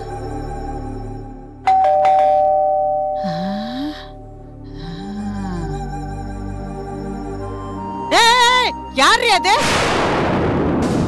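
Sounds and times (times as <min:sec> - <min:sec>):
background music: 0:00.0 - 0:11.0
two-tone doorbell chime: 0:01.6 - 0:03.4.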